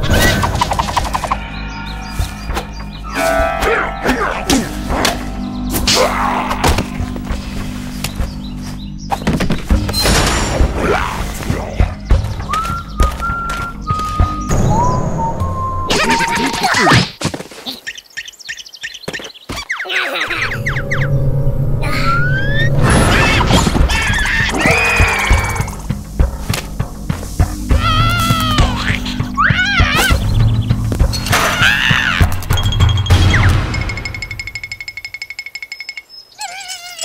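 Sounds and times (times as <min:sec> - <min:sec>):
cartoon music: 0:03.1 - 0:06.8, 0:27.7 - 0:30.3
high-pitched wavering cartoon cry: 0:27.8 - 0:30.2, 0:36.4 - 0:37.0.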